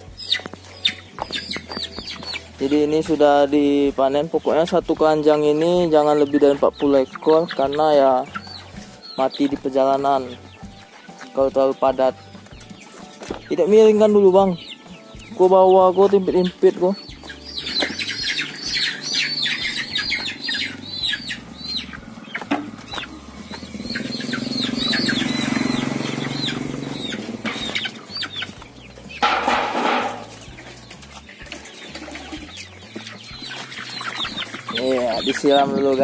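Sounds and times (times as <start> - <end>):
cockerels squawking and clucking: 0.0 - 36.0
bodies shuffling against bamboo: 27.2 - 36.0.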